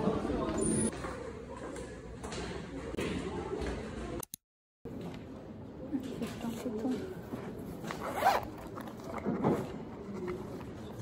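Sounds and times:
zipper on fabric case: 7.8s - 9.0s.

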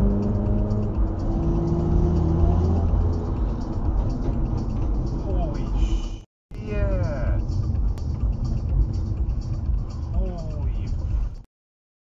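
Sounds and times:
road and engine rumble: 0.0s - 11.5s.

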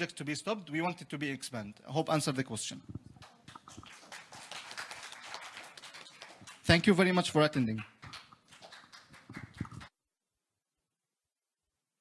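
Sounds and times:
scattered applause: 3.2s - 9.9s.

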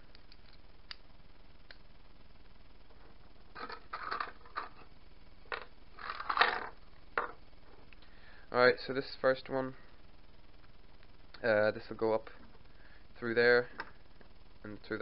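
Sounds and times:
bolts set down on wooden table: 6.3s - 7.4s.

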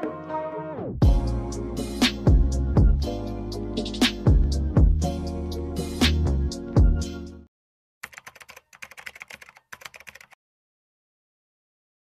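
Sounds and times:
music track: 0.0s - 7.5s
keyboard key clicks: 8.0s - 10.4s.

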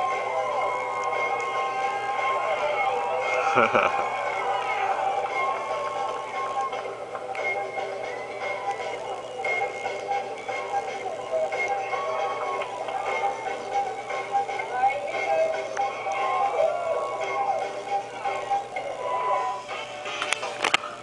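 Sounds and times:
voice through small speaker: 0.0s - 6.5s, 11.0s - 19.8s
background music: 0.0s - 21.0s.

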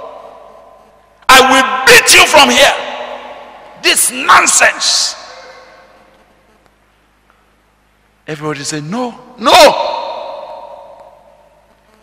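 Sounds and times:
man shouting over public address: 1.3s - 5.7s, 8.9s - 11.0s.

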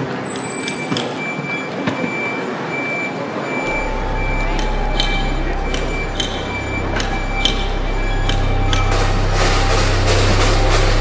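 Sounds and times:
reversing alarm beeping: 0.0s - 11.0s
street bustle: 0.0s - 11.0s
low engine hum: 3.7s - 11.0s.

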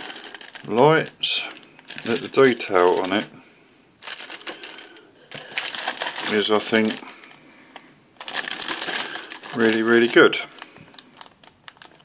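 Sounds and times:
plastic bag crinkling: 0.0s - 3.3s, 4.0s - 12.0s.

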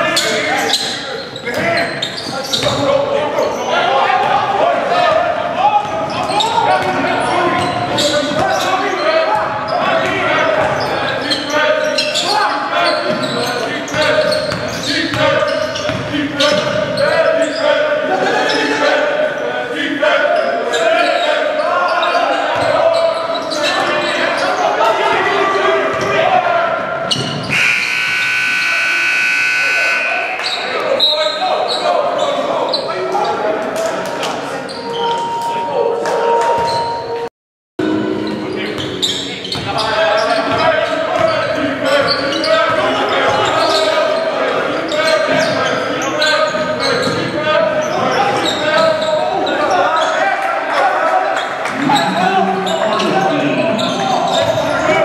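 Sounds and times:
voices echoing in a hall: 0.0s - 55.0s
scoreboard horn: 27.5s - 30.4s.

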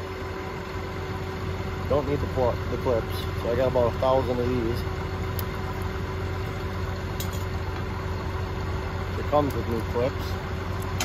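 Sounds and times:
engine idling: 0.0s - 11.0s.

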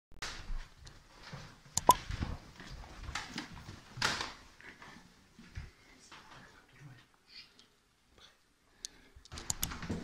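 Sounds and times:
footsteps on stairs: 0.5s - 5.8s.

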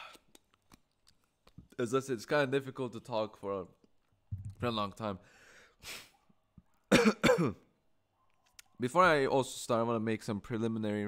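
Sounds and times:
man clearing his throat: 6.9s - 7.7s.

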